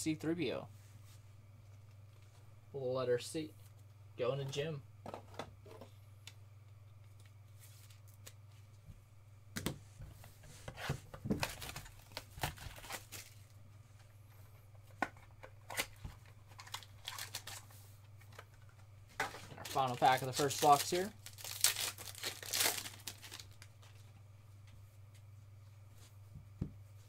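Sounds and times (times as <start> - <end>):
steady low hum: 0.0 - 27.0
plastic wrapper crinkling and tearing: 11.4 - 13.5, 15.6 - 17.7, 19.5 - 24.0.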